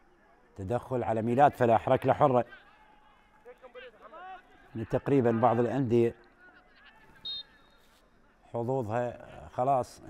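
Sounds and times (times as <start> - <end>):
faint stadium ambience: 0.0 - 10.0
referee's whistle blast: 7.2 - 7.9.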